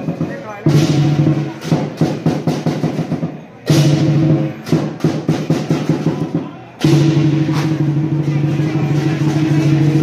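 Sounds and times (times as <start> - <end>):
cymbals clashing: 0.0 - 10.0
drum roll: 0.0 - 10.0.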